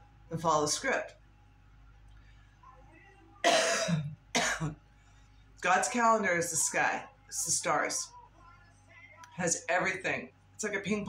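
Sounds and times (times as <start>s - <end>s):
woman coughing: 3.4s - 4.8s.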